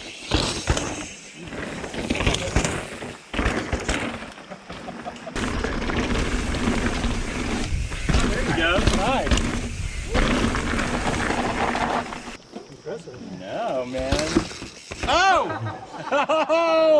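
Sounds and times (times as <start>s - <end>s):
bike knocking and rattling on rock: 0.1s - 12.4s, 13.7s - 15.4s
wind rushing over microphone: 6.3s - 12.3s.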